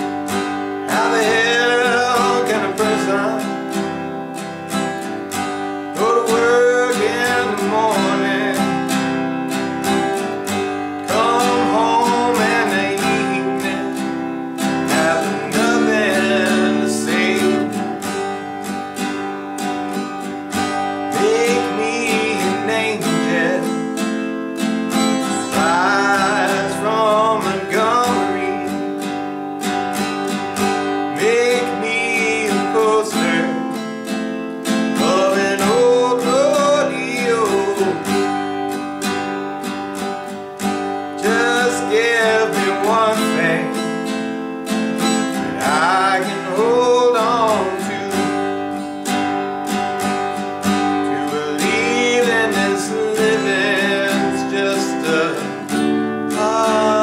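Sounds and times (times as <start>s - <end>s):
man singing: 0.0s - 4.1s, 5.9s - 18.6s, 20.6s - 24.3s, 25.0s - 29.3s, 30.7s - 38.8s, 41.1s - 48.9s, 50.6s - 57.0s
acoustic guitar strumming: 0.0s - 57.0s.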